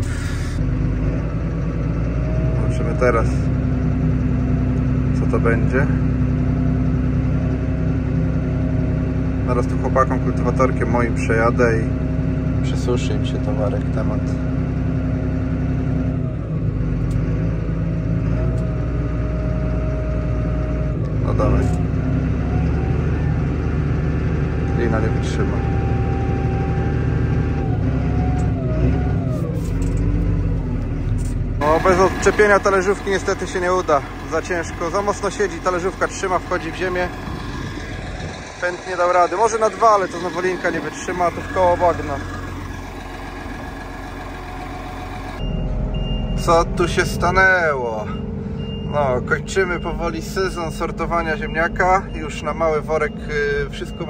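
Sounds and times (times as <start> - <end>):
tractor engine under load: 0.0 - 54.0.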